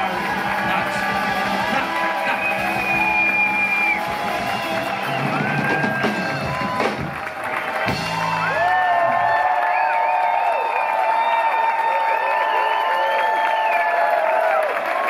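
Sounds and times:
live band playing: 0:00.0 - 0:09.3
audience cheering and clapping: 0:00.0 - 0:15.0.

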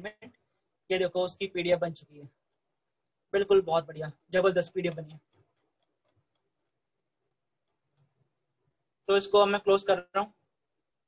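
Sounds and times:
man speaking: 0:00.0 - 0:02.4, 0:03.3 - 0:05.3, 0:09.0 - 0:10.4.

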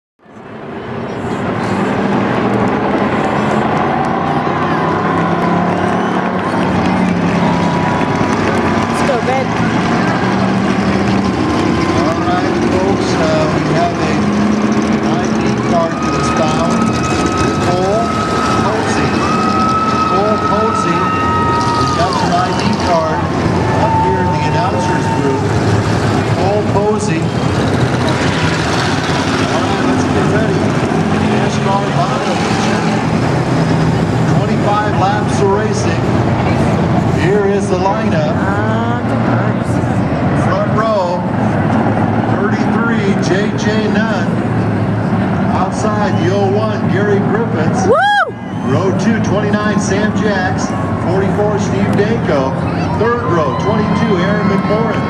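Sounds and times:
race car engines droning: 0:00.2 - 0:55.0
indistinct voices: 0:00.3 - 0:55.0.

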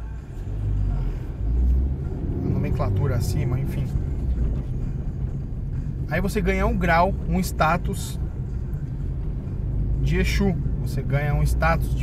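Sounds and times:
car engine rumble: 0:00.0 - 0:12.0
road noise: 0:00.0 - 0:12.0.

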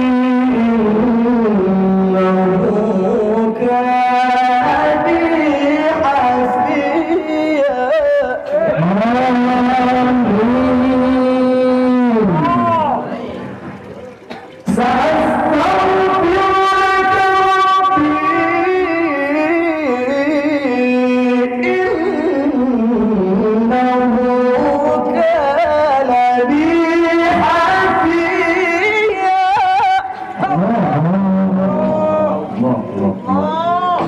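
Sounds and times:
man reciting melodically into microphone: 0:00.0 - 0:13.6, 0:14.6 - 0:34.0.

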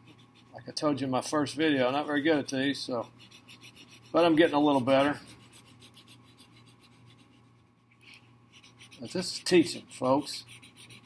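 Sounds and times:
marker scratching on paper: 0:00.0 - 0:00.8, 0:01.4 - 0:11.0.

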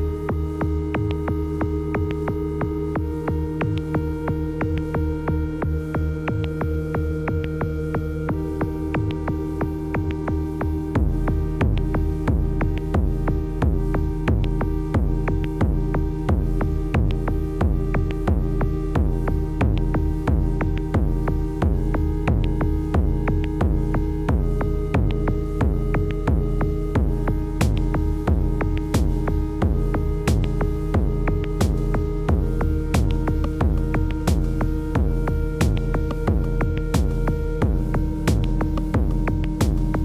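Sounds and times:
synth pad chords: 0:00.0 - 0:40.0
kick drum pulse: 0:10.0 - 0:40.0.

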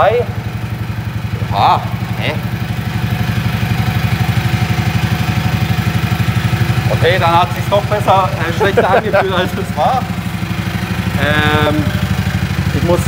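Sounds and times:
go-kart engine idling: 0:00.0 - 0:13.0.

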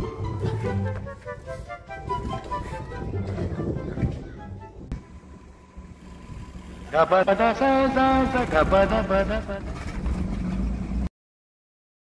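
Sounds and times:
small car engine running: 0:05.0 - 0:11.1
man's voice: 0:06.9 - 0:09.7.

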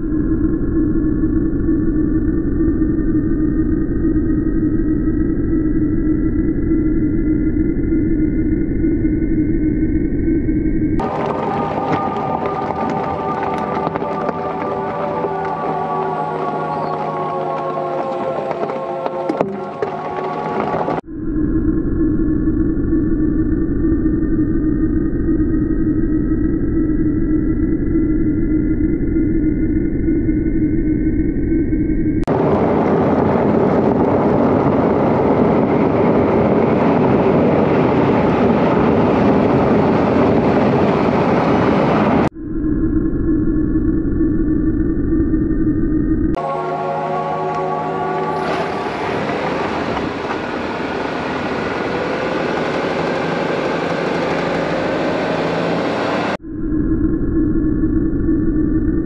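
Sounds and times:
vehicle engine whine: 0:00.0 - 0:59.0
tyres on gravel: 0:11.0 - 0:21.0.

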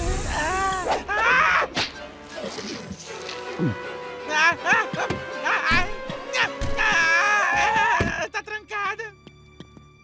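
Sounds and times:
cartoon background music: 0:00.1 - 0:09.8.

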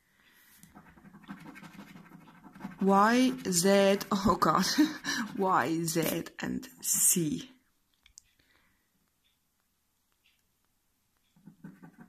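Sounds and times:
scratching scratchcard coating: 0:00.6 - 0:06.3, 0:11.3 - 0:12.0
person speaking: 0:02.6 - 0:07.6.

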